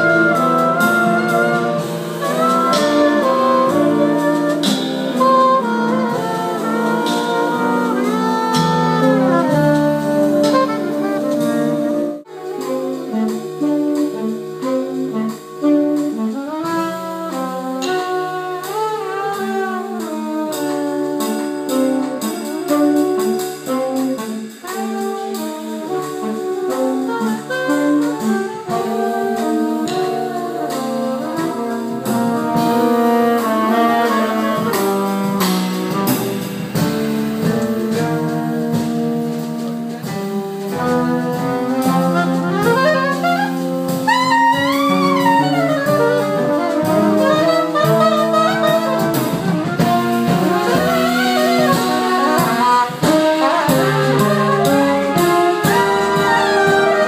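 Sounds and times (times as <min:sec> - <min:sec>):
jazz big band playing: 0:00.0 - 0:57.0.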